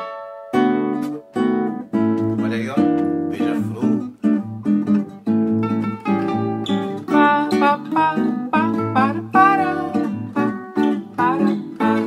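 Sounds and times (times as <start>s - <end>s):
plucked melodic line: 0.0s - 12.0s
strummed guitar chords: 0.0s - 12.0s.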